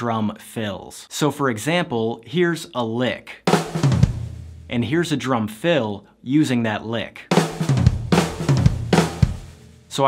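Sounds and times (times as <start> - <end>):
snare and bass drum strokes: 3.5 - 5.0, 7.3 - 10.0.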